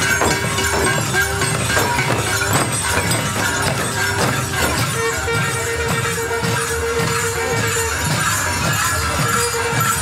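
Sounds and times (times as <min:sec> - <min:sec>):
drums beating steadily: 0:00.0 - 0:10.0
reed horn playing held notes: 0:04.5 - 0:08.4.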